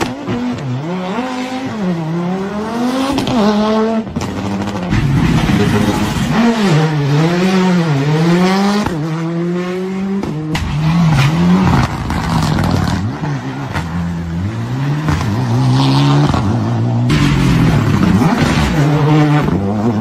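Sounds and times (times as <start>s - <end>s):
rally car engines revving: 0.0s - 20.0s.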